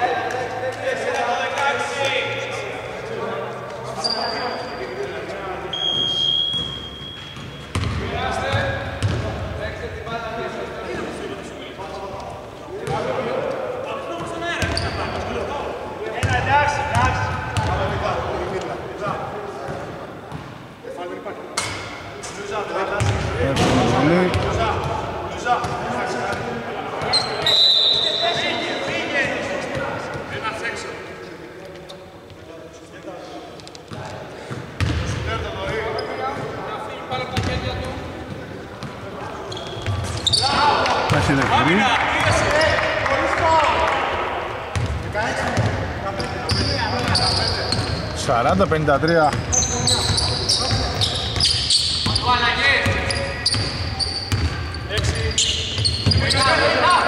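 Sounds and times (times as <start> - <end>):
whistle blast: 5.7 - 7.7, 27.2 - 28.6
shoe squeaks and knocks: 5.7 - 8.0, 14.6 - 15.3, 27.0 - 29.0, 39.5 - 40.6, 46.2 - 48.2, 49.1 - 56.7
basketball bouncing on hardwood: 7.4 - 8.0
players calling out: 37.3 - 57.0.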